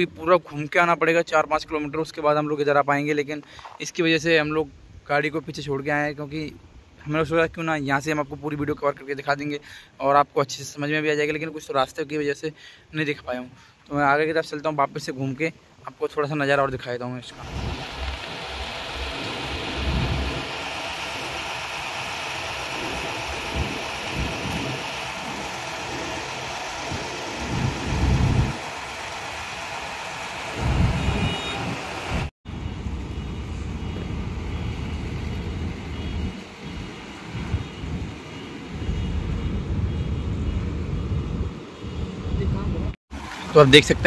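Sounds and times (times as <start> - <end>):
wind rumbling on microphone: 17.4 - 28.7, 30.6 - 43.0
heavy construction machinery drone: 17.4 - 42.4.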